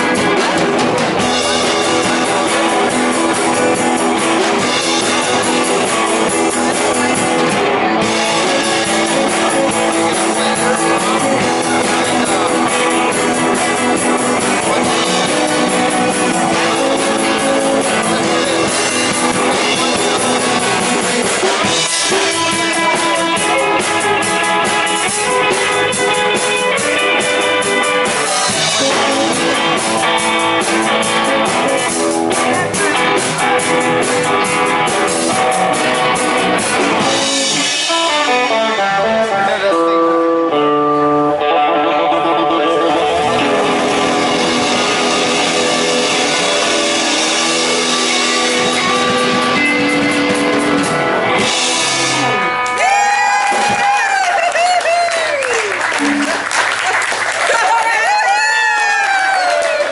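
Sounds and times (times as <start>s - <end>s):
drum kit with cymbals: 0.0s - 39.9s, 43.3s - 54.2s
electric guitars: 0.0s - 59.9s
live band playing boogie jam: 0.0s - 59.9s.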